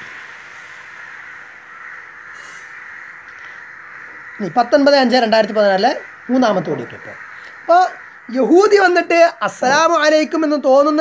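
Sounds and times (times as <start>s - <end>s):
birds calling: 0.0s - 11.0s.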